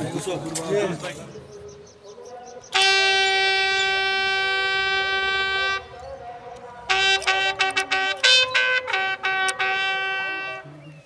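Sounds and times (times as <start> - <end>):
bugle long steady note: 2.7 - 6.0, 6.8 - 10.8.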